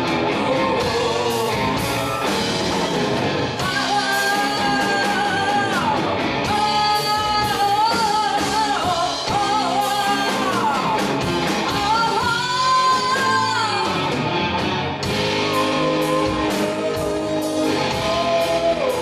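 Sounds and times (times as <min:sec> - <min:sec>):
bass guitar: 0:00.0 - 0:19.0
drums: 0:00.0 - 0:19.0
electric guitar: 0:00.0 - 0:19.0
sliding lead melody: 0:00.0 - 0:19.0.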